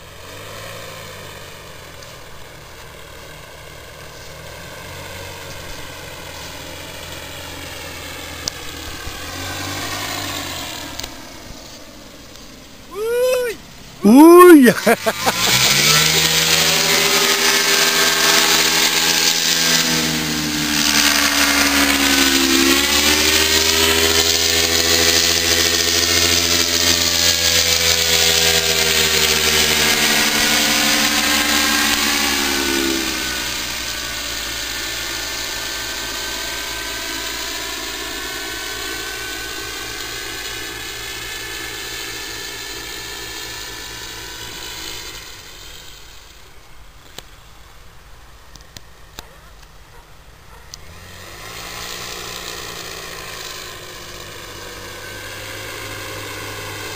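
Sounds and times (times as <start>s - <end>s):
paramotor engine droning: 0.0s - 56.9s.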